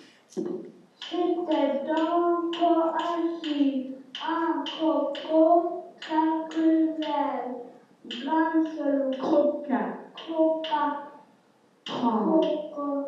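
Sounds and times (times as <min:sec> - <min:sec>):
child chanting nursery rhyme: 0:01.0 - 0:11.2, 0:11.9 - 0:13.0.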